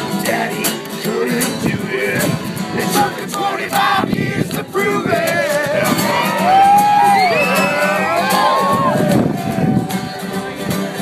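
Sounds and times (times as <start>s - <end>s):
strummed guitar: 0.0s - 11.0s.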